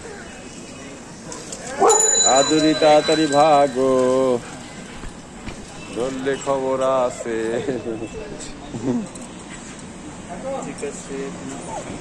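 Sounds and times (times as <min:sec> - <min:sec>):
faint street background: 0:00.0 - 0:12.0.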